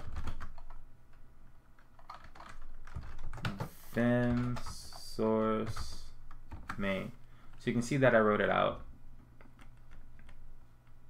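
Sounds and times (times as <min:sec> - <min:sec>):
computer keyboard keystrokes: 0:00.0 - 0:00.8, 0:01.8 - 0:06.9, 0:09.4 - 0:11.0.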